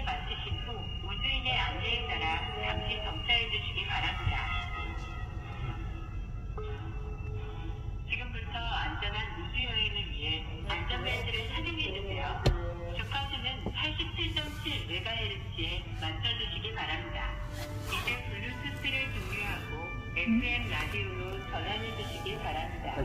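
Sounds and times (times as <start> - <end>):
background music: 0.0 - 23.0.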